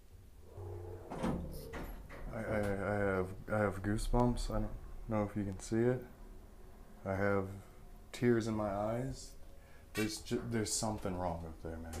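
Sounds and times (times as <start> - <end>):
low hum: 0.0 - 9.8.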